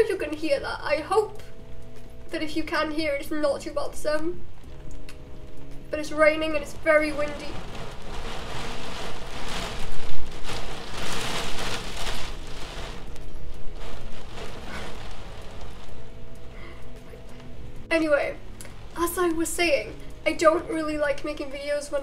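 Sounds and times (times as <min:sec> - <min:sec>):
faint background music: 0:00.0 - 0:22.0
wind-driven rain: 0:00.0 - 0:22.0.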